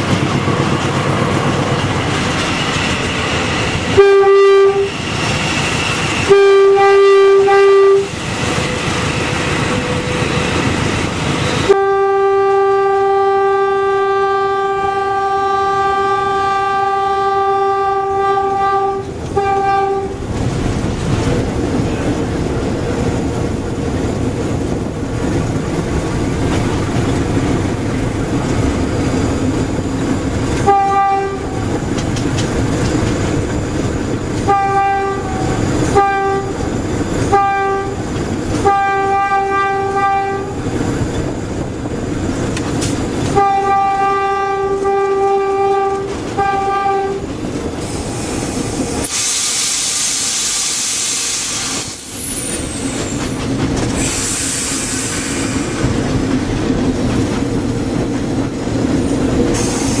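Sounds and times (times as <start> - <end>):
locomotive engine running: 0.0 - 13.2, 14.2 - 49.1
locomotive horn blasts: 3.9 - 5.0, 6.2 - 8.1, 11.5 - 20.2, 30.6 - 31.6, 34.4 - 36.6, 37.2 - 40.6, 43.3 - 47.3
loud hiss: 47.8 - 53.2, 53.9 - 56.0, 59.5 - 60.0.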